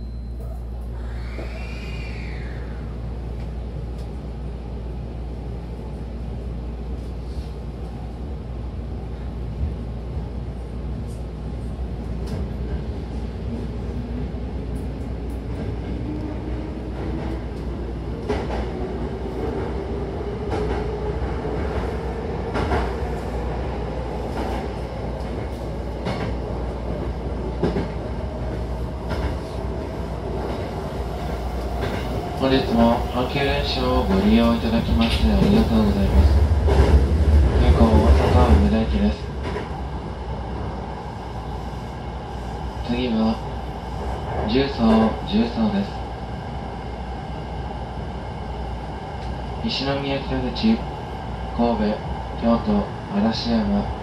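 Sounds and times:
train interior low hum: 0.0s - 54.0s.

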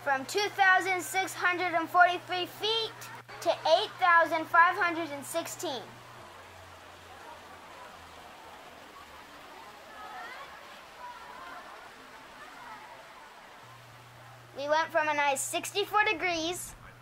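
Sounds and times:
faint murmur of voices: 5.5s - 14.6s.

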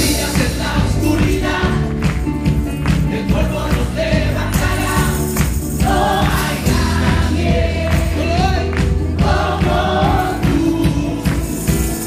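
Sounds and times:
gospel singing with band: 0.0s - 12.0s.

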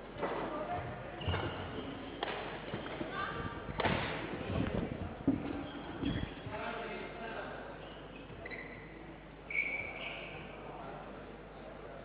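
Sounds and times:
faint voices echoing in hall: 0.0s - 12.0s.

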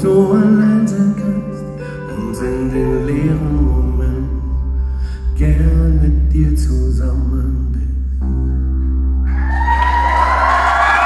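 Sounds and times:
audience cheering and whooping: 9.2s - 11.0s.

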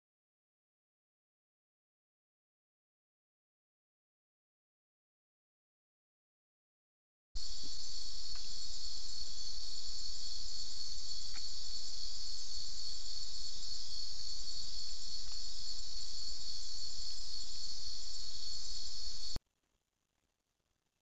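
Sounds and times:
night insects chirping: 7.4s - 19.4s
faint clicks: 8.2s - 8.6s, 11.1s - 12.1s, 14.0s - 17.3s.

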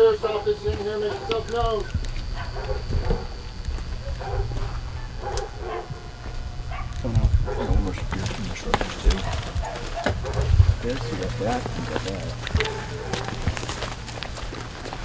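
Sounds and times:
thuds and clicks of people moving: 0.0s - 4.8s, 5.9s - 15.0s
puppies whining and yelping: 0.4s - 6.0s.

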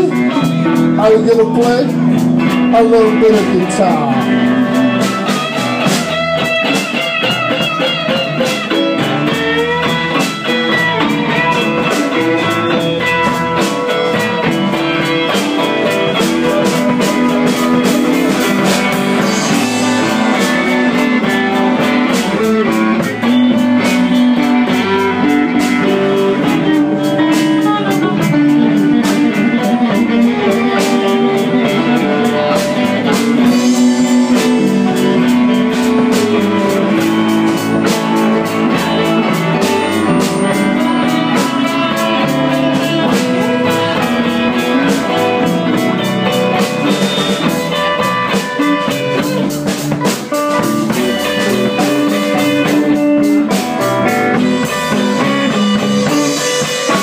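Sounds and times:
drum kit steady beat: 0.0s - 57.0s
electric guitar lead: 0.0s - 57.0s.

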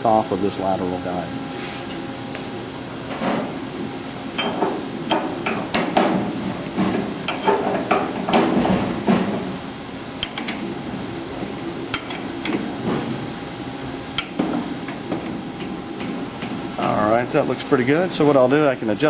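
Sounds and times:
metal clanks and clicks: 6.8s - 9.4s, 10.2s - 10.7s, 11.9s - 13.1s.

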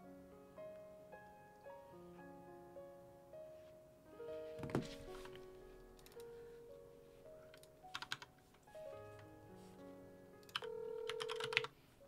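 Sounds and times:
soft background music: 0.0s - 12.0s
phone keypad tones: 10.4s - 11.7s.

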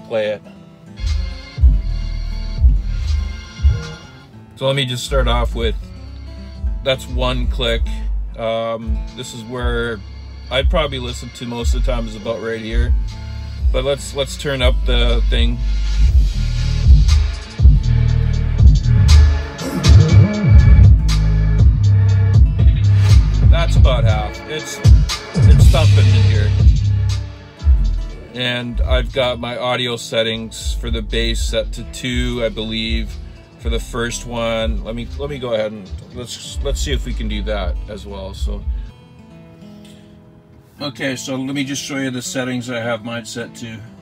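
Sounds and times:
bass-heavy music in car: 1.0s - 38.9s
deep bass hits: 1.1s - 4.0s, 10.6s - 11.0s, 12.8s - 29.4s, 30.6s - 35.4s, 36.6s - 38.9s.

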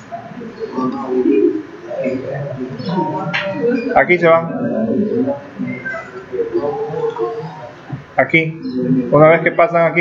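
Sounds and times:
dove cooing: 0.0s - 9.5s.

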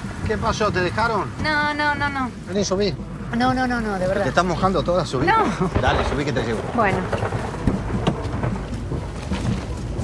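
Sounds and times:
steady rain: 0.0s - 10.0s
deep low rumble: 3.0s - 10.0s.

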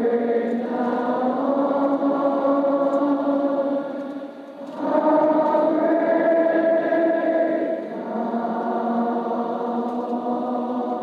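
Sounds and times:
slow hymn music: 0.0s - 11.0s.

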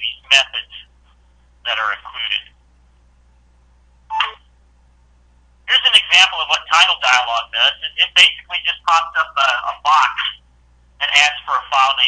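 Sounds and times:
low steady hum: 0.0s - 12.0s
brief blip: 4.1s - 4.4s.

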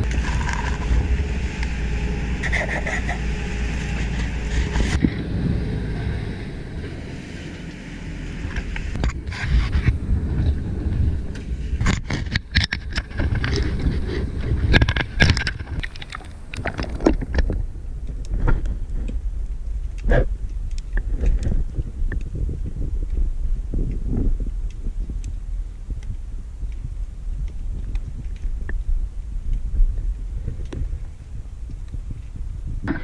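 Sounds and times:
boat engine rumbling: 0.0s - 33.0s.

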